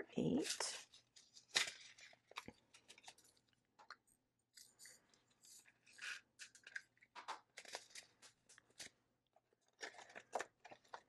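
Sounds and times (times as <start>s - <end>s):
plastic containers clicking and rattling: 9.6s - 11.0s.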